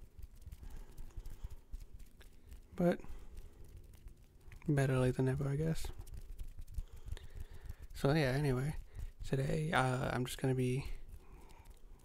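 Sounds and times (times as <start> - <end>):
fingertips tapping: 0.0 - 12.0.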